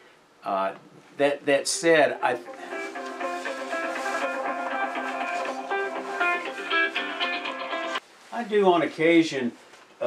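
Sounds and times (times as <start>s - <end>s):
guitar ringtone: 1.7s - 8.0s.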